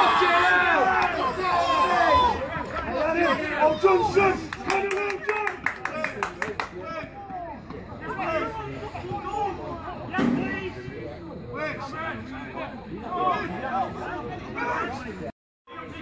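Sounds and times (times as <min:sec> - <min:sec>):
men talking and calling: 0:00.0 - 0:16.0
person clapping: 0:04.5 - 0:06.7.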